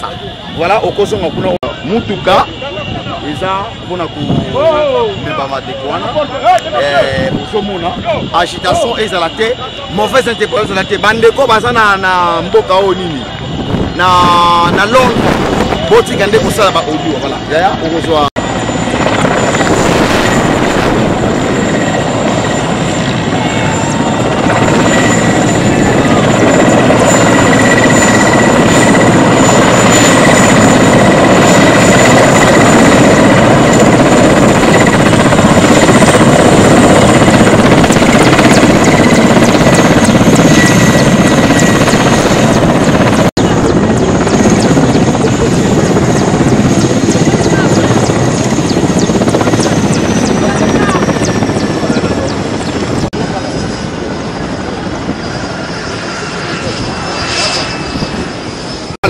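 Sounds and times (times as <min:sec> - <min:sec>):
people talking: 0:00.0 - 0:13.4, 0:14.0 - 0:18.3, 0:25.7 - 0:26.5, 0:45.1 - 0:46.1, 0:47.3 - 0:48.2, 0:49.3 - 0:52.5, 0:53.1 - 0:54.1
helicopter rotor and turbine: 0:00.0 - 0:59.0.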